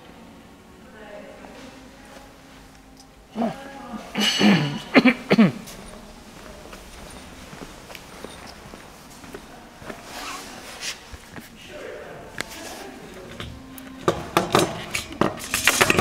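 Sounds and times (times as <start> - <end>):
faint voices: 0.0 - 16.0.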